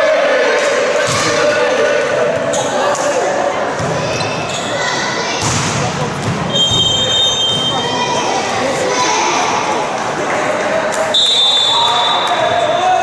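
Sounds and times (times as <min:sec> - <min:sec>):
echoing voices in sports hall: 0:00.0 - 0:13.0
high whistle tone: 0:06.5 - 0:07.9, 0:11.1 - 0:12.9.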